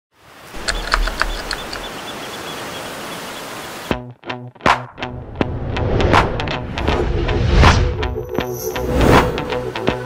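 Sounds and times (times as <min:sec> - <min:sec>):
sharp water splashes: 0:00.5 - 0:03.9
music: 0:03.9 - 0:10.0.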